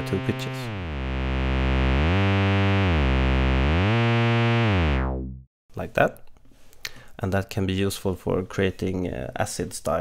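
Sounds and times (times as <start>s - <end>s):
buzzy synthesizer bass note gliding: 0.0s - 5.5s.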